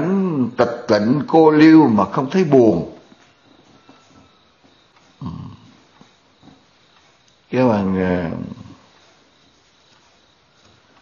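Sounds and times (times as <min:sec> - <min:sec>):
faint room noise: 0:00.0 - 0:11.0
man's low throat sound: 0:05.2 - 0:05.8.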